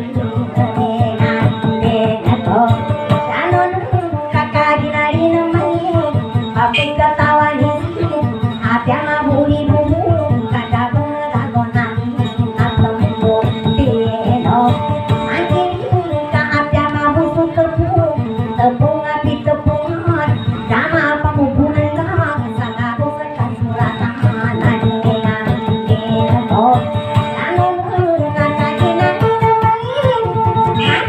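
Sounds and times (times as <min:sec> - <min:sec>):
strummed acoustic guitar: 0:00.0 - 0:31.0.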